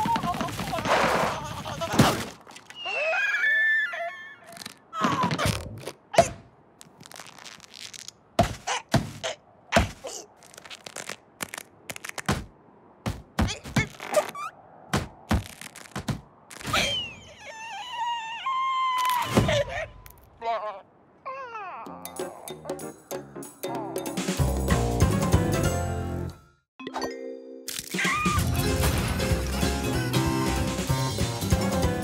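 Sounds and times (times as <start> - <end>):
sharp knocks and thunks: 8.4 - 10.0, 12.3 - 13.9, 14.9 - 15.4, 16.0 - 16.3.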